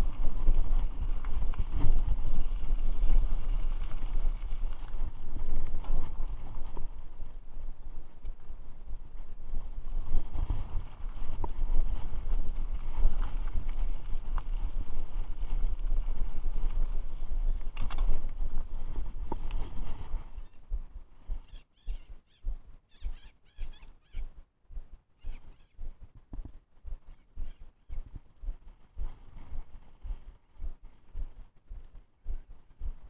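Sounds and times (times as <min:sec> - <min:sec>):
mountain bike rattling on trail: 0:00.0 - 0:20.6
wind rumble on microphone: 0:00.0 - 0:33.0.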